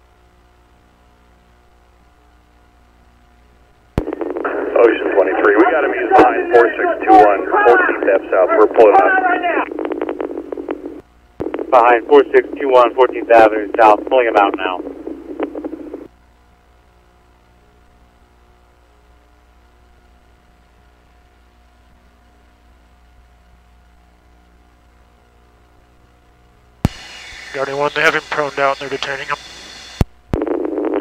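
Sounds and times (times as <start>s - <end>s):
faint steady hum: 0.0s - 31.0s
radio hiss: 0.2s - 26.0s, 26.8s - 31.0s
radio keying click: 4.0s - 6.6s, 9.6s - 16.1s
tinny radio voice: 4.4s - 9.7s, 11.7s - 14.9s, 27.5s - 29.5s
thin steady tones: 19.0s - 30.0s.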